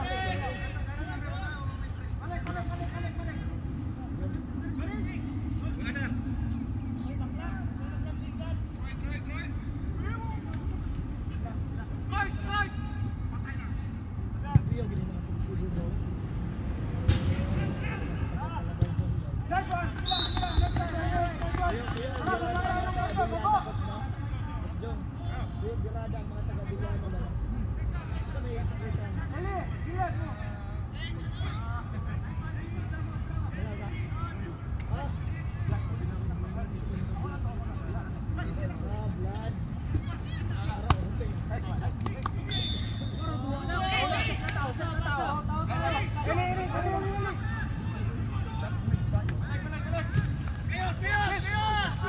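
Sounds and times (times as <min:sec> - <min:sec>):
players shouting: 0:40.0 - 0:52.0.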